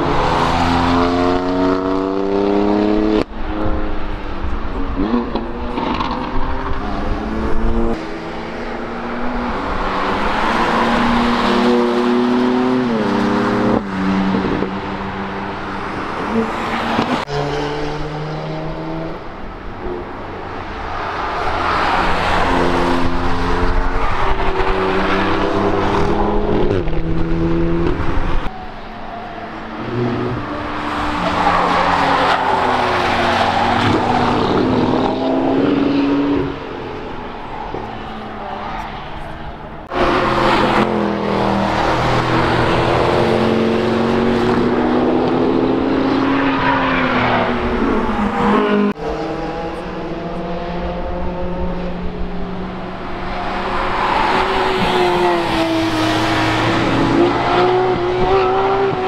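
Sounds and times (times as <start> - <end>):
race cars accelerating past: 0.0 - 19.4, 29.7 - 59.0.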